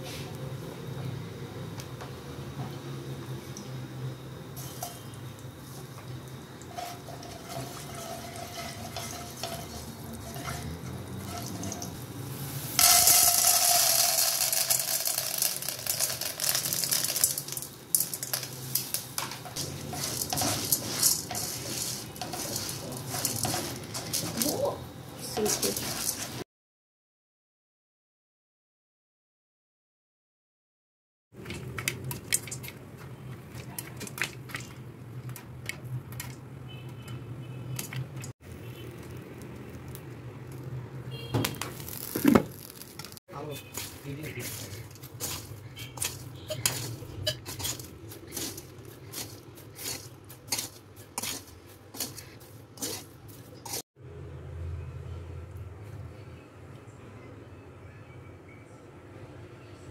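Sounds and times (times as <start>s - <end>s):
kernels scraping against pan: 4.6s - 26.4s, 41.7s - 53.8s
popcorn kernels pouring into wok: 5.6s - 26.4s, 41.7s - 52.2s.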